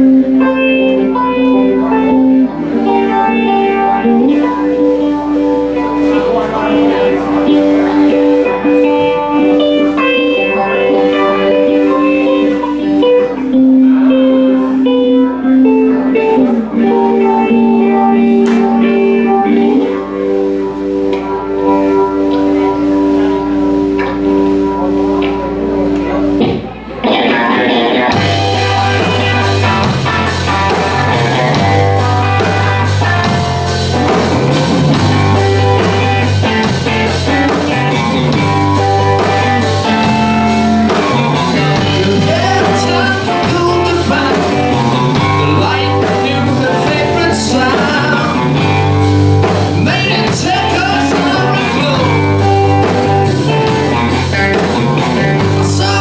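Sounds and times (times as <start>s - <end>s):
electric guitars sustained notes: 0.0s - 56.0s
full rock band playing: 0.0s - 56.0s.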